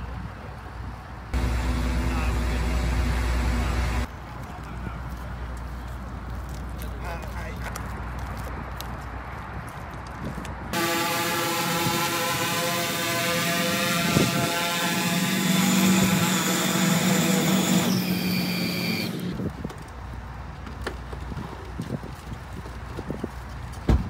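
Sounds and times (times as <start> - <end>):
drone propellers humming: 1.4 - 4.1.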